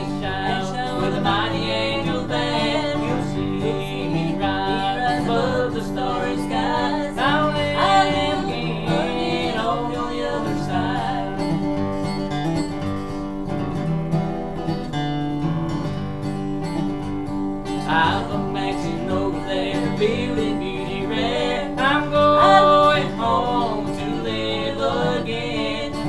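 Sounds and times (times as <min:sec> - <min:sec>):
singing: 0:00.0 - 0:11.7, 0:17.9 - 0:26.0
acoustic guitar strumming: 0:00.0 - 0:26.0.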